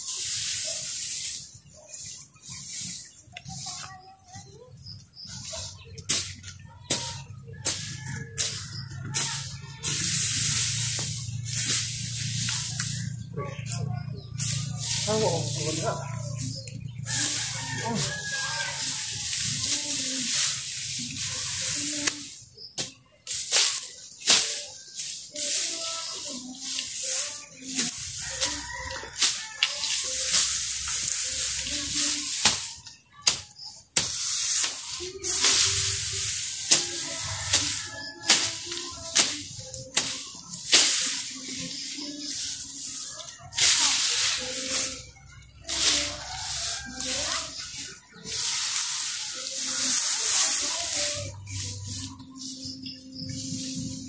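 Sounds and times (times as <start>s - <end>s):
grass rustling and swishing: 0.0s - 54.0s.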